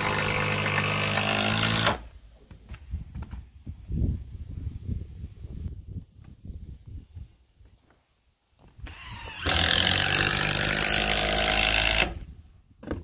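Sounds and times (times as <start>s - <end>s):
cordless drill driving screw into wood: 0.0s - 2.1s, 8.8s - 12.3s.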